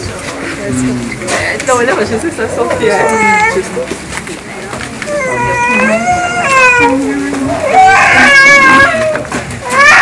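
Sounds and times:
small child crying: 5.1 - 10.0.

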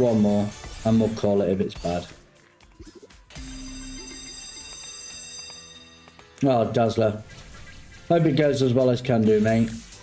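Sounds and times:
bell-like slot game chime: 3.3 - 7.1.

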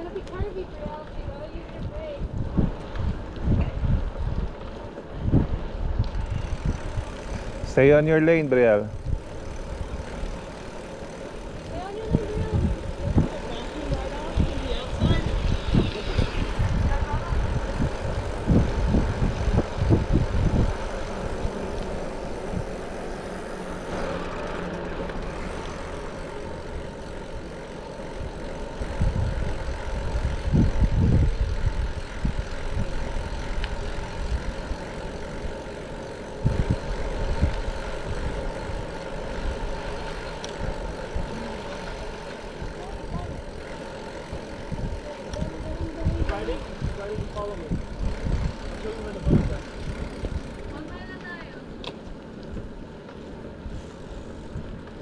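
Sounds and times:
wind buffeting microphone: 0.0 - 24.0, 25.3 - 51.2
rolling road noise: 0.0 - 55.0.

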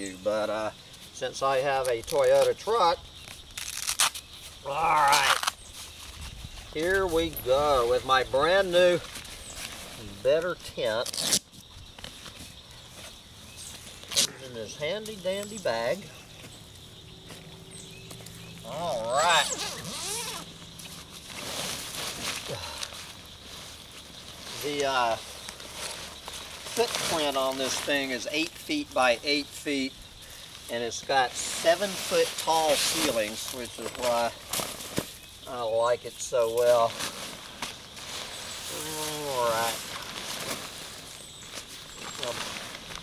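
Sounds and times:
tent fabric rustling: 0.0 - 43.0
straps shuffling: 0.9 - 43.0.

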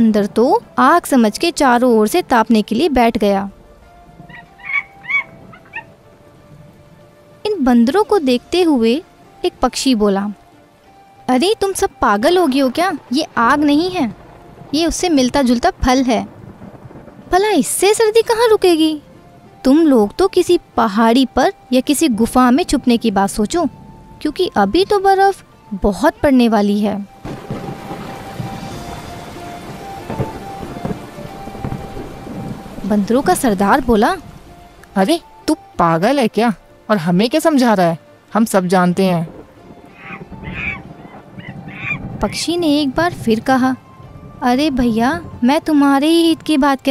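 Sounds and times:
faint background music: 0.0 - 46.9
steady rain falling: 0.0 - 46.9
thunder rumbling: 0.0 - 46.9
animal calls: 4.2 - 6.0, 39.9 - 42.4.

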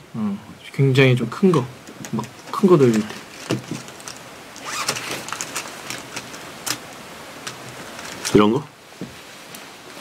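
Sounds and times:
handling clicks and rustles: 1.6 - 9.7.

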